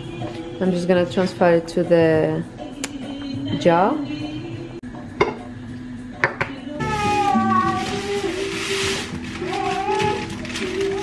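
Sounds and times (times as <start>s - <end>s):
background music: 0.0s - 11.0s
baking paper rustling: 6.8s - 11.0s.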